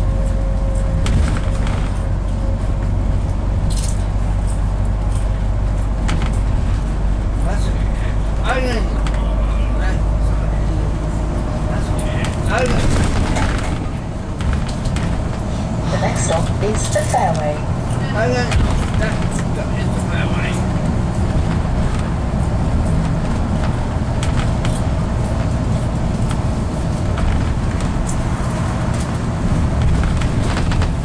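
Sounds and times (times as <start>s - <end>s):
bus engine hum: 0.0s - 31.0s
road rumble: 0.0s - 31.0s.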